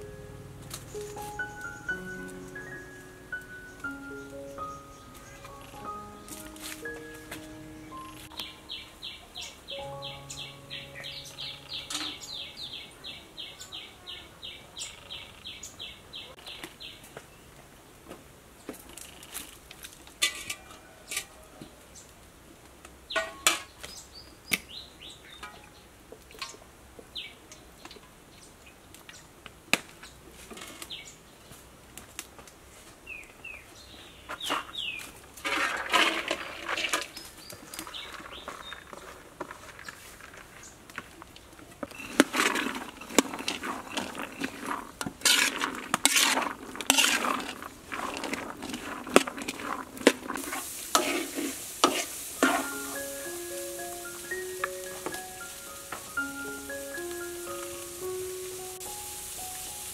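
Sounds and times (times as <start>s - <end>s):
small birds chirping: 0.0s - 17.6s, 23.1s - 29.4s, 33.0s - 35.2s, 37.0s - 50.9s, 51.6s - 59.9s.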